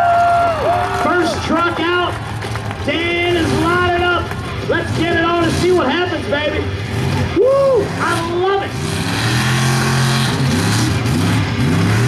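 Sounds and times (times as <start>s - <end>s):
truck engine revving hard: 1.0s - 12.0s.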